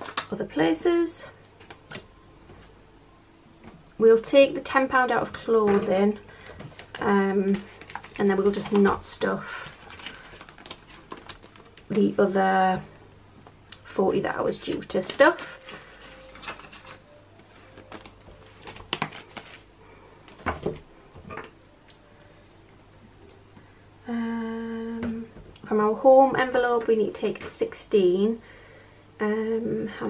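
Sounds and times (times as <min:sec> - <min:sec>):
paper and plastic pages handled: 0:05.3 - 0:12.2, 0:14.6 - 0:19.7
woman humming: 0:24.0 - 0:25.4.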